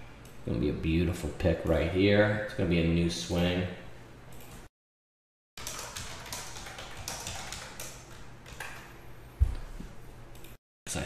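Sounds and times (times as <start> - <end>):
typing on computer keyboard: 5.6 - 8.9.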